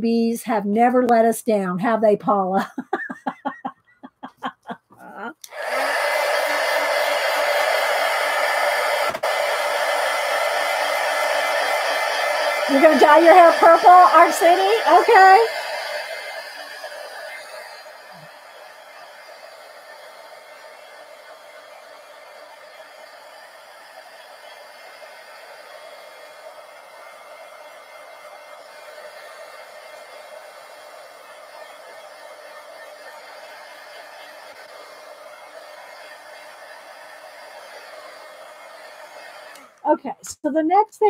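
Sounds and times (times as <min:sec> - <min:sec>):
heat gun blowing: 0:05.4 - 0:39.9.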